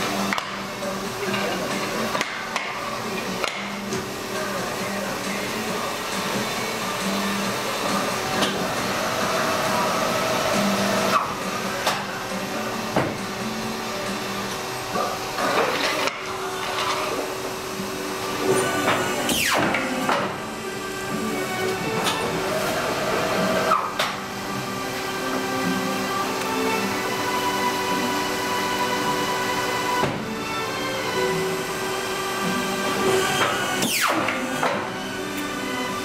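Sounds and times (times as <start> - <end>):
steady machine hum: 0.0 - 36.0.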